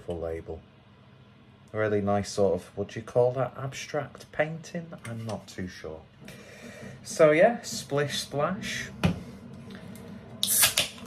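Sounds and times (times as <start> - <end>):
hiss of gas from can: 10.4 - 10.9.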